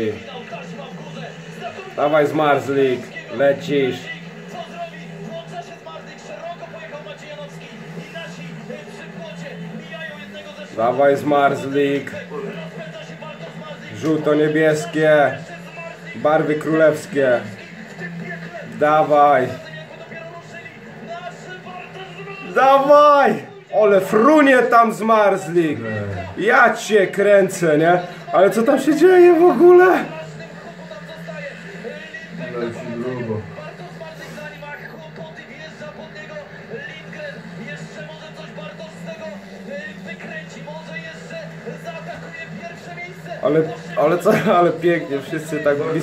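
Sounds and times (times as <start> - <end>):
commentator talking: 0.0 - 46.0
faint voices: 0.0 - 46.0.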